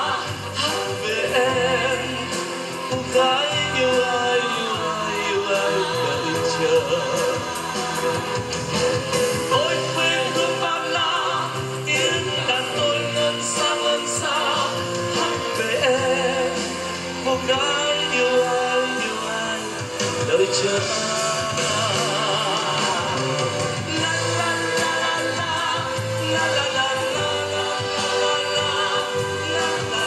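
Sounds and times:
live band playing slow ballad: 0.0 - 30.0.

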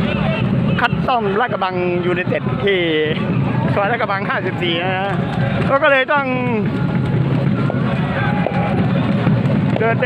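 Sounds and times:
stadium low rumble: 0.0 - 10.0.

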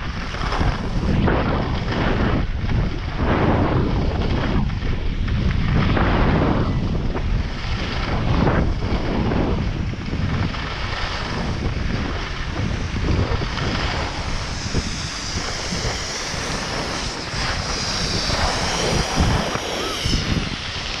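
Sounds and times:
skis scraping on snow: 0.0 - 21.0
wind buffeting the microphone: 0.0 - 21.0.

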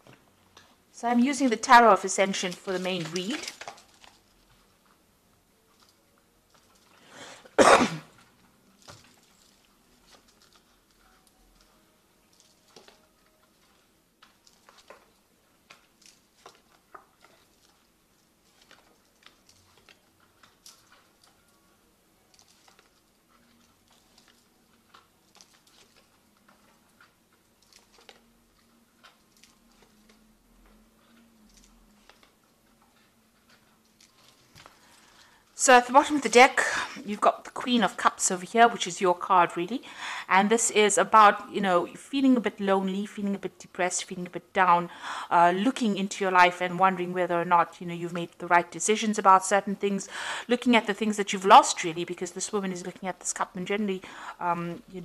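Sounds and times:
person coughing: 7.5 - 8.1.

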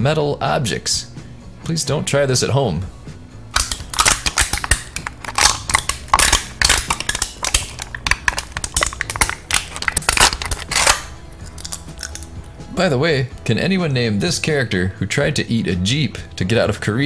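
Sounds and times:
man chewing on metal: 3.6 - 12.5.

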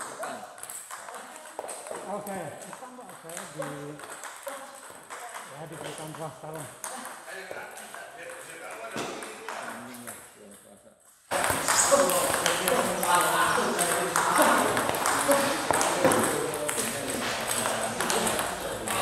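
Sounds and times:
table tennis balls clicking: 0.0 - 10.6, 11.3 - 19.0
voices in hall: 0.0 - 19.0.

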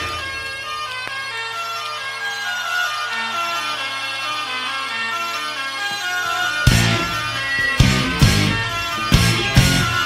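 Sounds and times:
reedy melody line: 5.2 - 10.0.

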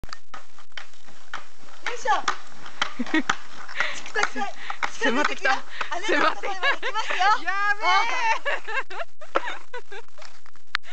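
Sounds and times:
skateboard wheels rolling on asphalt: 0.0 - 8.4
person speaking: 3.8 - 8.5.

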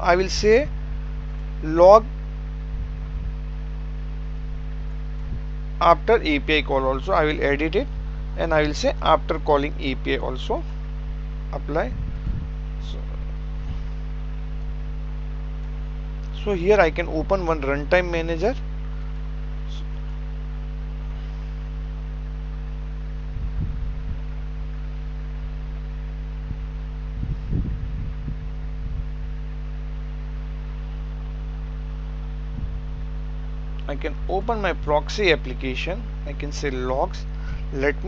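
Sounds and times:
soft low thumps: 0.0 - 5.8, 10.5 - 17.8, 18.8 - 35.0
low electrical hum: 0.0 - 38.0.

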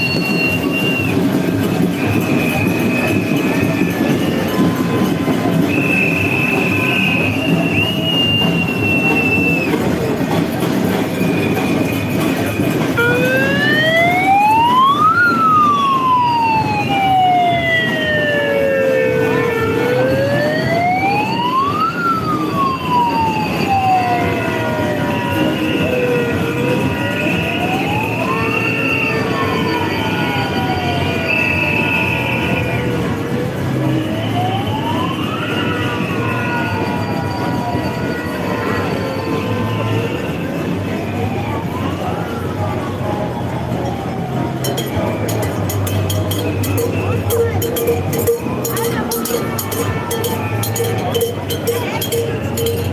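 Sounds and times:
crowd marching: 0.0 - 52.9
siren wailing: 12.6 - 42.6.

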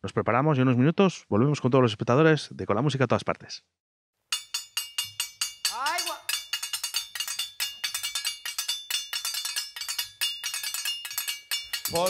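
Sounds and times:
metal hand percussion ringing: 4.3 - 12.0.

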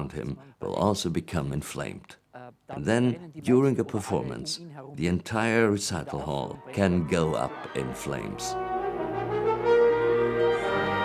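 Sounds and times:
orchestra sustained brass chords: 6.6 - 11.0.

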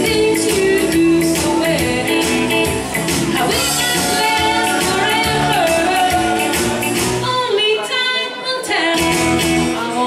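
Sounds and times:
live band playing: 0.0 - 10.0
woman singing: 0.0 - 10.0.

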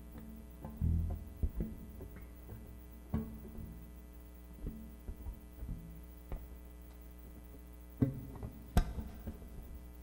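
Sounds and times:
plucked electric bass notes: 0.0 - 6.6
electrical mains hum: 0.0 - 10.0.

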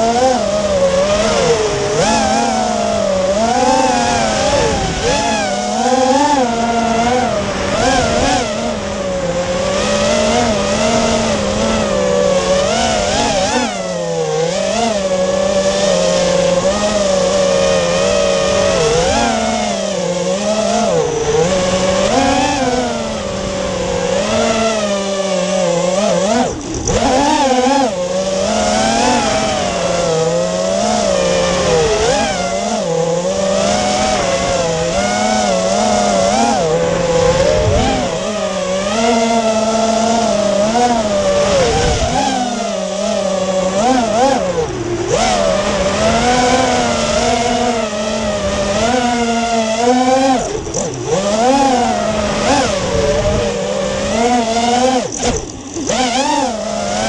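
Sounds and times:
quadcopter motors whining: 0.0 - 57.0.

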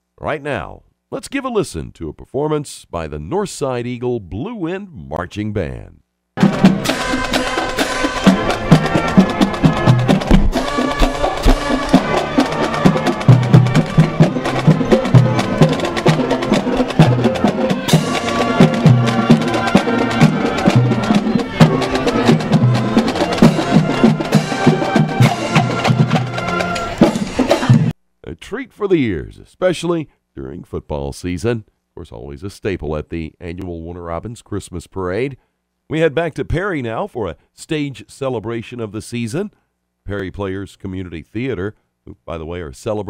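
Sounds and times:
marching band playing: 6.4 - 27.9
snare and bass drums: 6.4 - 27.9.

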